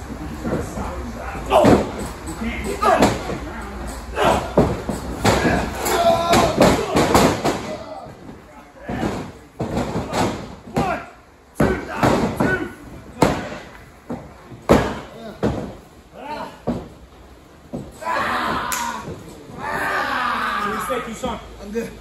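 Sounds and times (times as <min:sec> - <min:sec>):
people grunting: 0:00.2 - 0:13.7, 0:14.7 - 0:16.9, 0:17.7 - 0:21.4
bodies slamming onto mat: 0:04.2 - 0:07.8, 0:08.8 - 0:11.0, 0:11.6 - 0:15.9.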